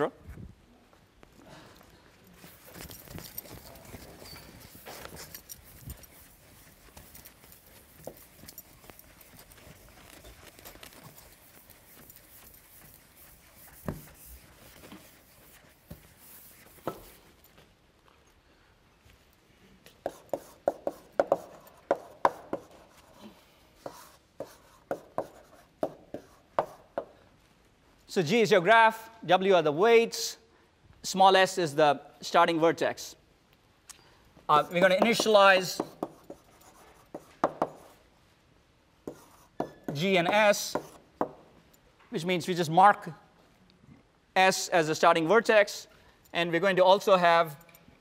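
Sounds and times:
eraser scrubbing chalkboard: 0:03.9 - 0:17.3, 0:20.0 - 0:23.2, 0:23.8 - 0:26.9, 0:34.5 - 0:38.0, 0:39.1 - 0:41.4.

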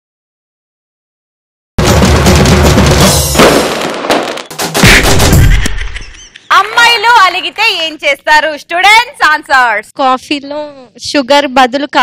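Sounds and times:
music: 0:01.8 - 0:03.4, 0:04.5 - 0:05.4
firework-like crackles and bangs: 0:01.8 - 0:05.9.

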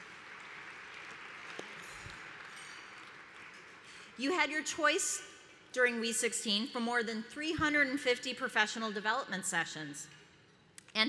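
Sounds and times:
audience applauding: 0:00.0 - 0:04.0.

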